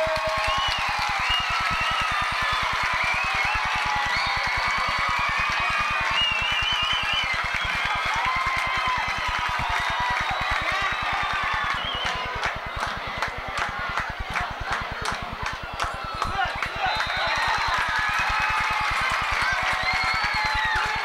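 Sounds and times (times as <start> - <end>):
crowd noise: 0.0 - 21.0
fast low pulsing: 7.6 - 19.7.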